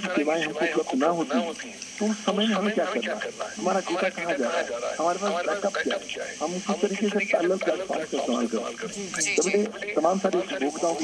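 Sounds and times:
person talking over telephone: 0.0 - 11.0.

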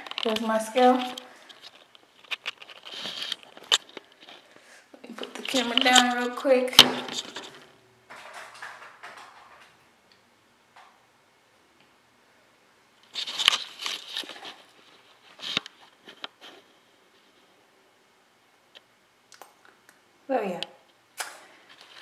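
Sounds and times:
camera handling rustling: 1.0 - 4.5, 13.1 - 16.5.

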